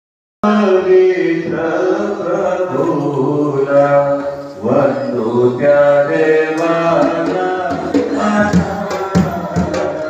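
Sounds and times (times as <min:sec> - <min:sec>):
person singing chant-like melody: 0:00.4 - 0:10.0.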